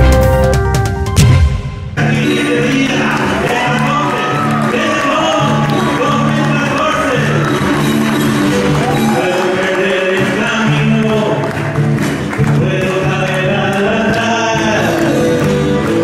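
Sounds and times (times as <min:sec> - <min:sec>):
acoustic guitar: 0:00.0 - 0:16.0
audience whooping and cheering: 0:02.4 - 0:10.3.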